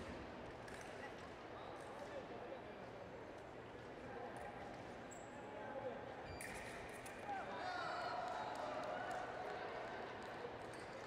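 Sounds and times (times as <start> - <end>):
hum of large hall: 0.0 - 11.0.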